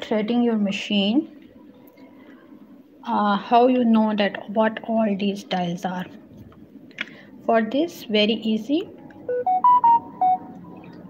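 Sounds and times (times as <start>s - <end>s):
electronic beeping jingle: 9.3s - 11.0s.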